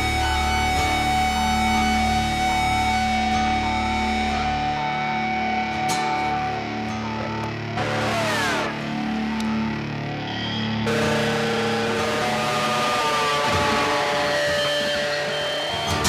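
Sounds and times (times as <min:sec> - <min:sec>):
alternative rock band playing: 0:00.0 - 0:16.0
electric guitar slide: 0:00.0 - 0:16.0.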